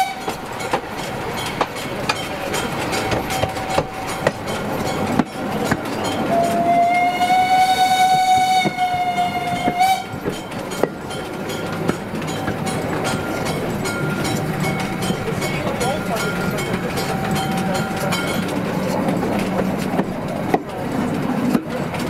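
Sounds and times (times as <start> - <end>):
steam locomotive whistle: 0.0 - 0.4, 6.3 - 10.2
train wheels rumbling and clicking: 0.0 - 22.0.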